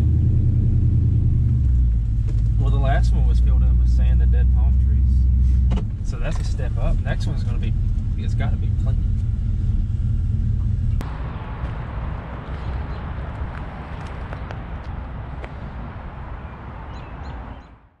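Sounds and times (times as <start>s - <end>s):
vehicle engine idling: 0.0s - 17.0s
bird chirps: 16.4s - 17.9s.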